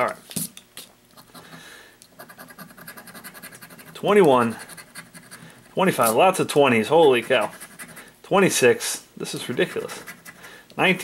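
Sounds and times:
coin scratching lottery ticket: 2.2s - 6.2s, 7.0s - 8.0s, 9.4s - 10.5s.

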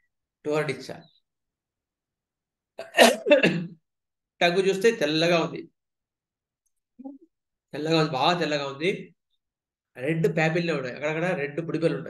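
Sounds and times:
man sneezing: 2.8s - 3.8s.

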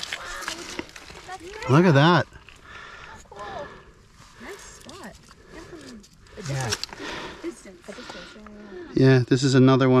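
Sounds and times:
creek trickling: 0.0s - 9.0s.

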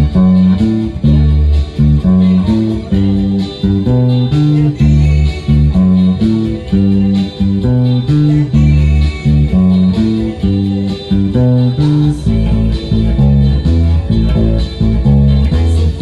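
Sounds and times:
electric bass line: 0.0s - 16.0s.

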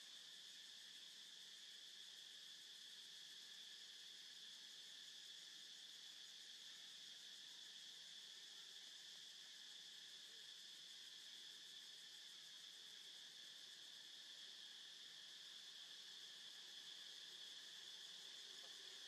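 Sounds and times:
faint insect chorus drone: 0.0s - 19.0s.

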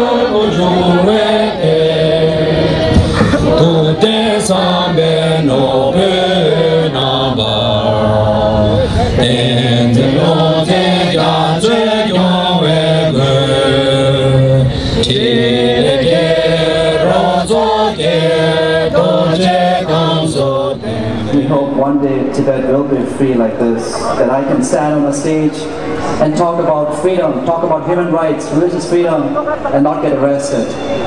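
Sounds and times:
voices singing slow chant: 0.0s - 22.4s.

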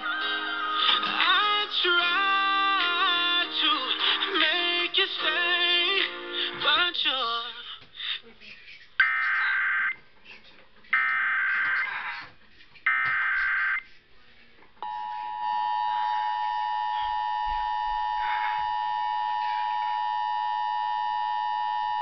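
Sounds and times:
two-tone alert signal: 14.8s - 22.0s.

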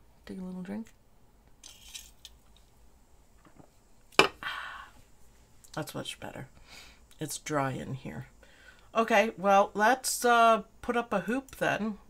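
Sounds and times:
cup set down on desk: 3.4s - 4.4s
breathy exhale: 4.4s - 5.0s, 8.4s - 8.9s.

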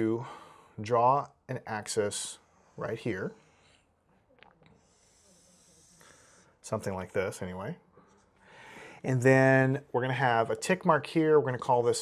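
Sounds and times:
marker hissing across whiteboard: 4.8s - 6.6s.

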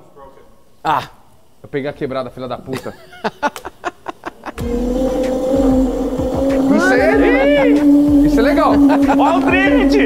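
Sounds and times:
small vehicle motor whining: 4.6s - 10.0s.

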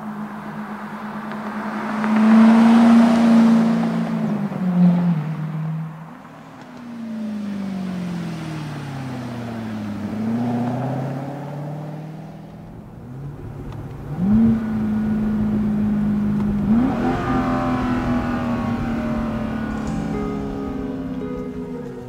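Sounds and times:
car engine running: 0.0s - 22.0s.

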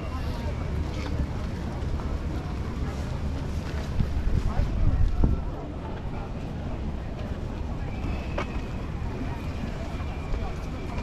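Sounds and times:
murmur of crowd walking: 0.0s - 11.0s
wind rumbling on microphone: 0.0s - 11.0s.

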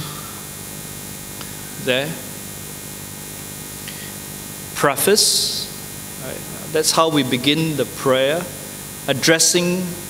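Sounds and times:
electrical mains hum and hiss: 0.0s - 10.0s.

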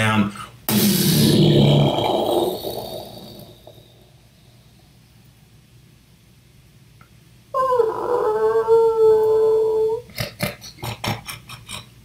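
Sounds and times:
person imitating creature wail: 0.7s - 3.7s, 7.6s - 10.1s.

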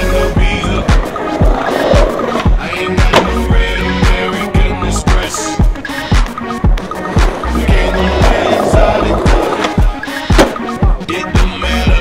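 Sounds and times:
music with deep beat: 0.0s - 12.0s
skateboard wheels rolling on stone: 0.2s - 3.5s, 6.2s - 10.7s
skateboard clack: 0.8s - 3.5s, 8.0s - 10.8s.

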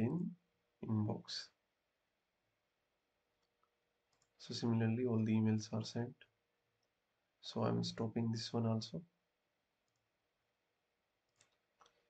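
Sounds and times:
computer mouse clicks: 3.4s - 4.4s, 9.8s - 10.1s, 11.3s - 12.0s.

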